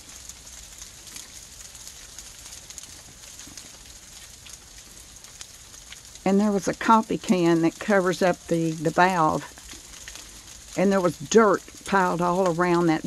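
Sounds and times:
outdoor background hiss: 0:00.0 - 0:13.0
small crackling ticks: 0:00.0 - 0:13.0.

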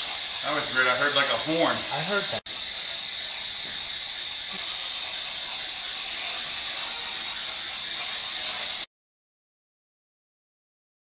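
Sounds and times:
radio static hiss: 0:00.0 - 0:08.9.

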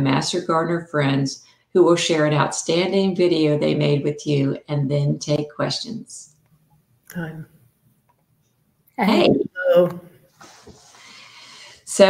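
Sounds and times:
faint background hiss: 0:01.4 - 0:12.0
people speaking greetings: 0:09.0 - 0:10.0.

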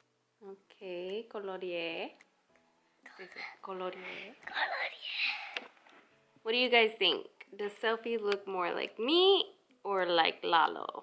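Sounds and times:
person whispering: 0:03.1 - 0:05.6.

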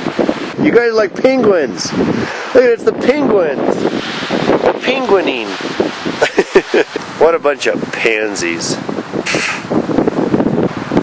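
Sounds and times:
person blowing nose: 0:09.2 - 0:09.7.

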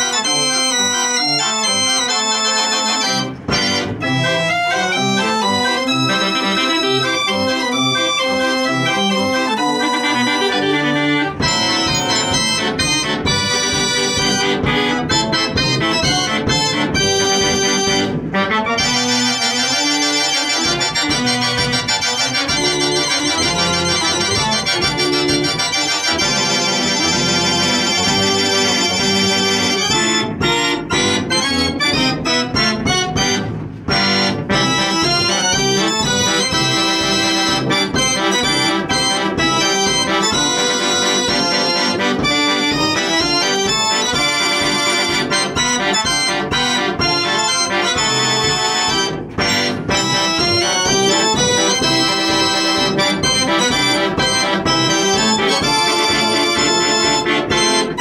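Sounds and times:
fair organ music: 0:00.0 - 0:58.0.

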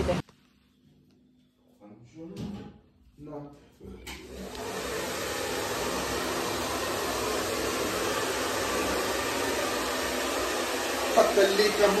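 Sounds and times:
hair dryer blowing air: 0:04.2 - 0:12.0.

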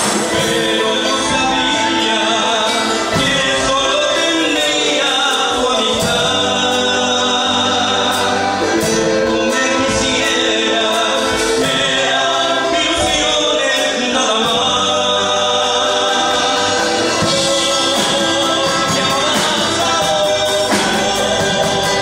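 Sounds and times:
live folk band playing: 0:00.0 - 0:22.0
man singing into microphone: 0:00.0 - 0:22.0.

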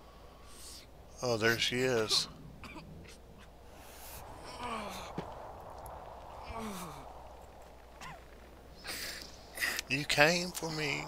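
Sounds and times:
person sighing: 0:04.4 - 0:05.3, 0:06.4 - 0:07.1.

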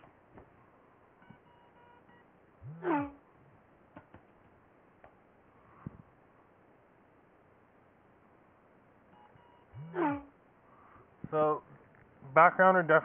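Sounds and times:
short voiced sound: 0:02.6 - 0:03.2, 0:09.8 - 0:10.3.

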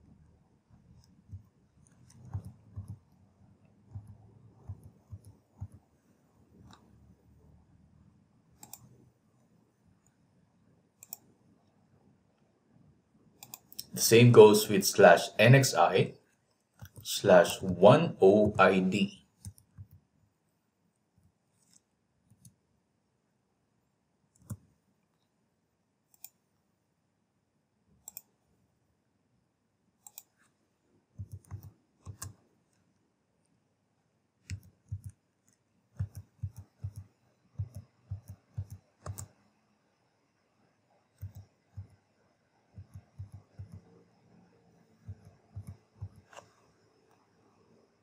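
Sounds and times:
faint computer mouse clicks: 0:01.0 - 0:03.1, 0:08.6 - 0:09.0, 0:11.0 - 0:11.8, 0:13.4 - 0:14.0, 0:16.7 - 0:17.0, 0:19.4 - 0:20.0, 0:21.6 - 0:22.6, 0:24.3 - 0:24.7, 0:26.1 - 0:26.4, 0:28.0 - 0:28.3, 0:30.0 - 0:30.5, 0:31.2 - 0:32.8, 0:34.4 - 0:39.4, 0:41.2 - 0:42.0, 0:42.8 - 0:43.9, 0:45.0 - 0:47.2.

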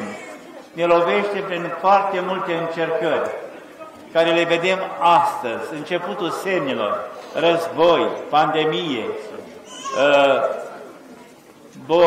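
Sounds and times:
man speaking: 0:00.8 - 0:03.5, 0:04.1 - 0:10.6, 0:11.8 - 0:12.0.

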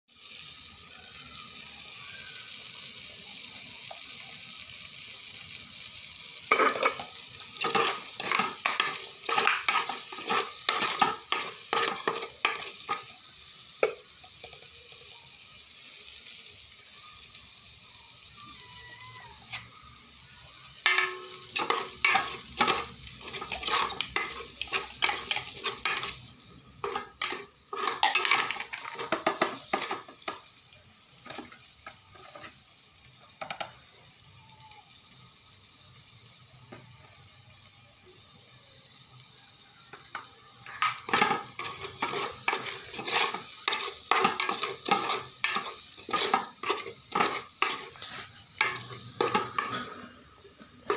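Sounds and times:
onion and tomato sizzling in oil: 0:00.1 - 0:50.9
steel spoon scraping a pot: 0:07.6 - 0:13.1, 0:20.8 - 0:30.0, 0:40.8 - 0:50.2.

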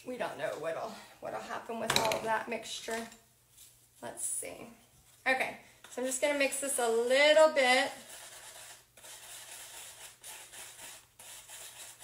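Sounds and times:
paintbrush scratching on palette: 0:07.9 - 0:12.0.

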